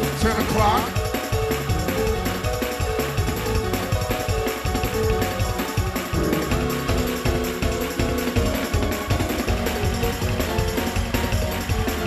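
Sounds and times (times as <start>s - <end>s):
drum kit beat: 0.0s - 12.0s
electronic keyboard: 0.0s - 12.0s
gospel band playing: 0.0s - 12.0s
organ: 0.0s - 12.0s.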